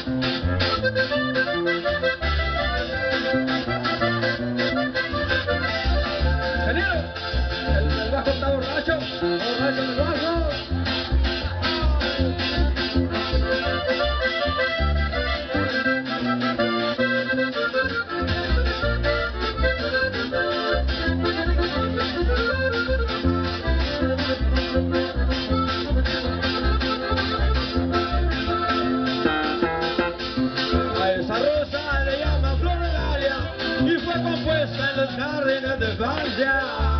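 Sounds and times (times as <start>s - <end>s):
live band playing instrumental: 0.0s - 36.9s.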